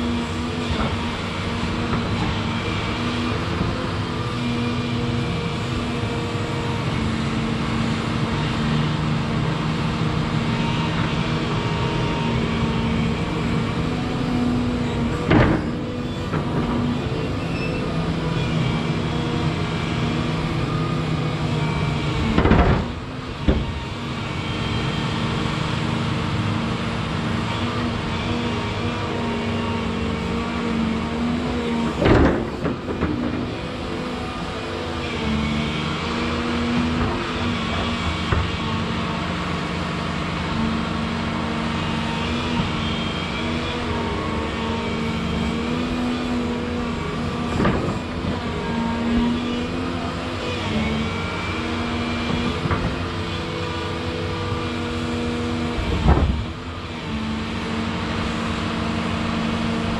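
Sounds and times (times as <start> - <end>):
excavator diesel engine: 0.0 - 59.9
hydraulic whine: 0.0 - 59.9.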